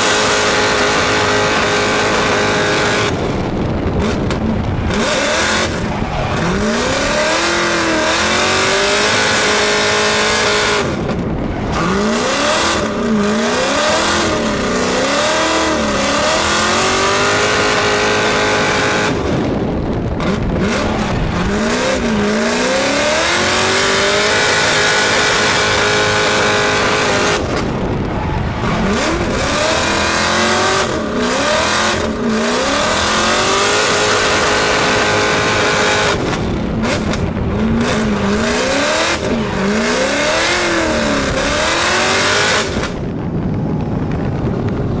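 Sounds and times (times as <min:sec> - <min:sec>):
car engine revving hard: 0:00.0 - 0:43.0.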